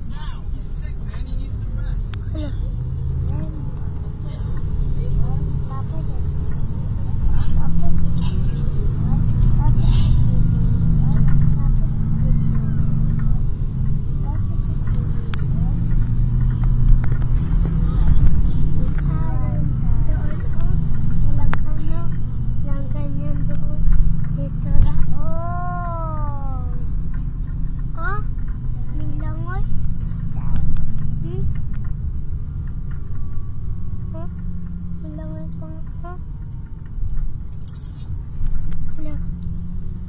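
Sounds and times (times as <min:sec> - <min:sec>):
faint voices talking: 0:00.0 - 0:27.2
road and engine noise: 0:00.0 - 0:40.0.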